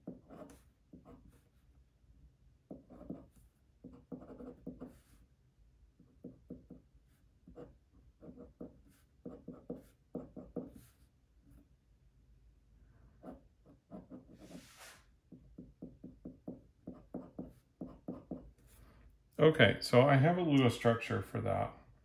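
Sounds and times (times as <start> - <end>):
glass pen scratching on paper: 0.0 - 1.5, 2.7 - 5.1, 7.5 - 11.0.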